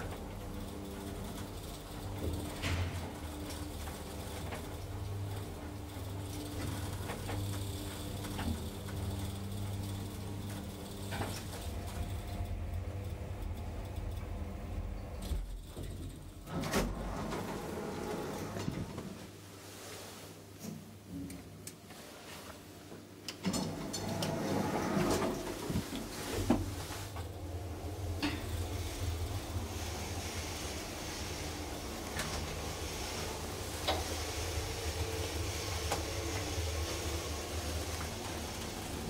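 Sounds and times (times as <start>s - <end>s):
elevator doors sliding open: 0.0s - 19.2s, 23.4s - 39.0s
hydraulic elevator hum: 0.0s - 19.2s, 23.4s - 39.0s.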